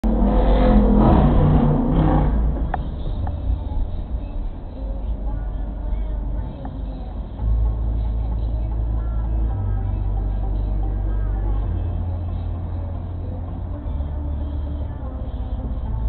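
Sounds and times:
deep bass line: 0.0 - 16.0
music on car stereo: 1.6 - 16.0.

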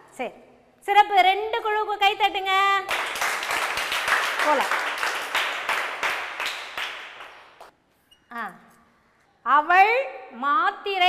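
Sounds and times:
group applause: 2.9 - 7.7.

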